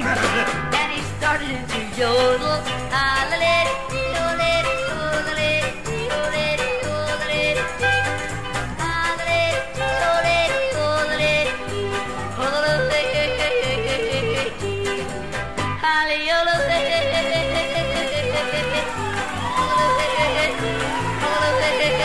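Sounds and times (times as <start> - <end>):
bouncing bass accompaniment: 0.0 - 15.8
person yodeling: 16.5 - 22.0.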